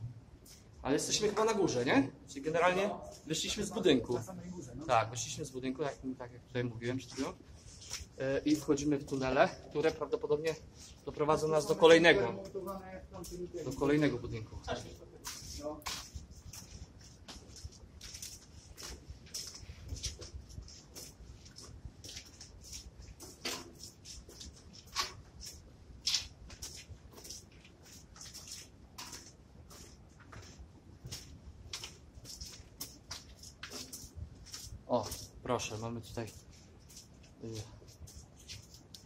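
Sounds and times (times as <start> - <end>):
footsteps crunching on concrete: 6.9 - 39.0.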